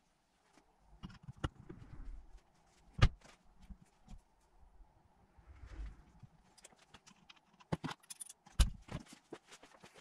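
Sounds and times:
metal parts clicking and knocking: 6.5s - 9.1s.

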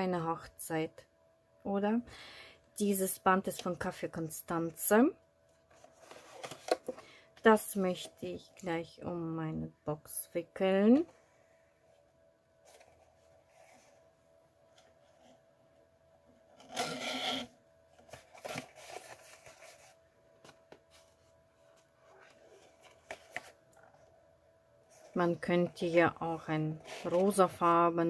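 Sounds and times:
cardboard box and ribbon rustling: 18.0s - 20.0s, 24.9s - 28.0s.

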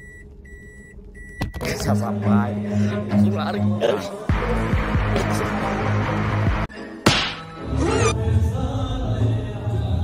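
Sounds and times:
music: 1.7s - 10.0s
whip crack: 7.1s - 7.5s.

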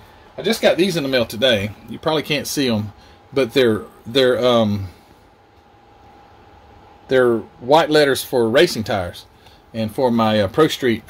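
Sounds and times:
faint steady hiss: 0.0s - 11.0s
thin steady hum: 0.0s - 11.0s.

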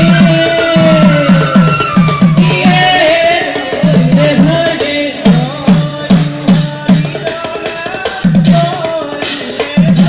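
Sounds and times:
held melody line: 0.0s - 8.8s.

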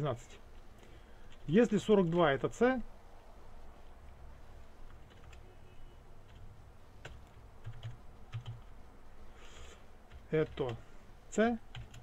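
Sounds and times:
keyboard typing clicks: 4.9s - 5.4s, 6.2s - 8.7s, 11.7s - 12.0s.

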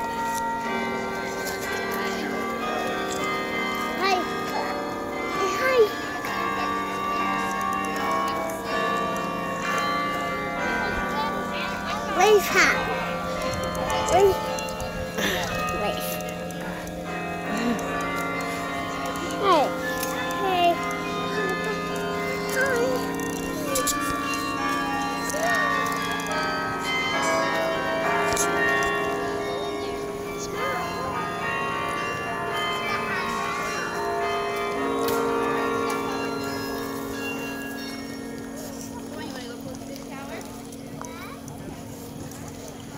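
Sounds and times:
carillon bells ringing: 0.0s - 42.9s.

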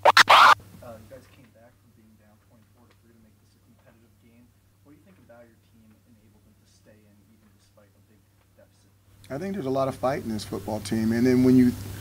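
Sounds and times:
record scratch: 0.0s - 0.6s.

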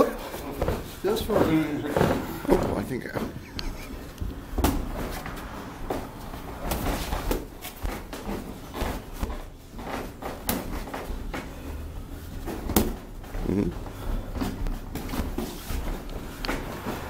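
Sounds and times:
boxing gloves punch impacts: 4.6s - 5.2s, 5.9s - 11.5s, 12.4s - 13.2s.

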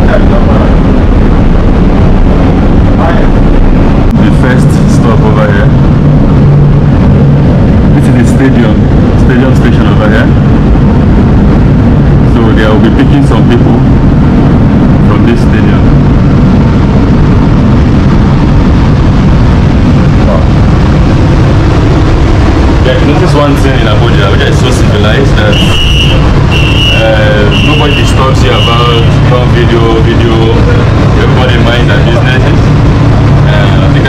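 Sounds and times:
metro car rumble and hum: 0.0s - 34.0s
faint voices: 20.2s - 20.6s, 22.8s - 32.8s, 33.4s - 34.0s.

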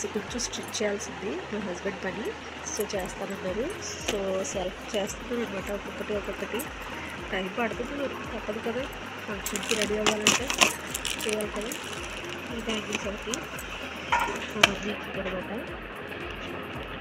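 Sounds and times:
person speaking: 0.0s - 15.8s
bangles clinking: 2.6s - 16.9s.

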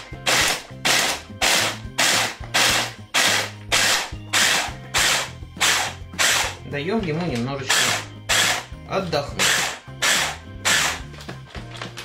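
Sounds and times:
hand blender chopping in pulses: 0.0s - 6.6s, 7.7s - 8.7s, 9.4s - 11.0s.

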